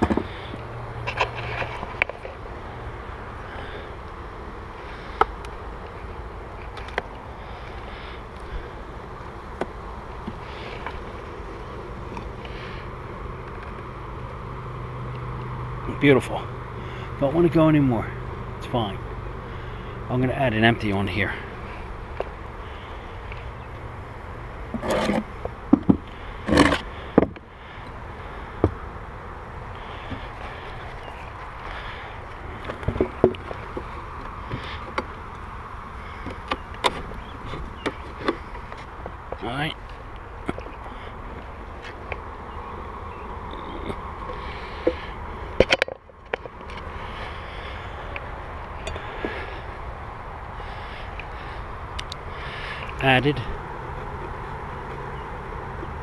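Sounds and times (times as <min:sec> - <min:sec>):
honeybees buzzing: 0:00.0 - 0:56.0
wooden hive boxes knocking: 0:24.7 - 0:27.5, 0:28.6 - 0:28.8.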